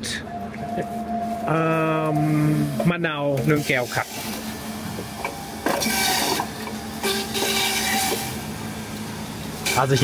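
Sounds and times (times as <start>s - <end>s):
centrifugal juicer grinding fruit: 1.5s - 10.0s.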